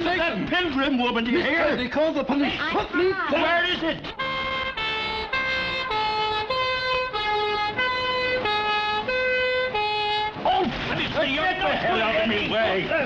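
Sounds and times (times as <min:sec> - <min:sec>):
two-tone police siren: 0:04.2 - 0:10.6.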